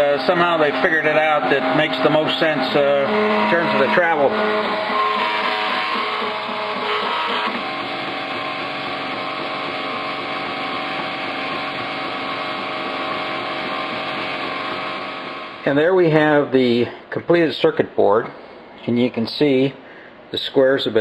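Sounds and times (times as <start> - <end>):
cnc mill motor whine: 0.0 - 15.7.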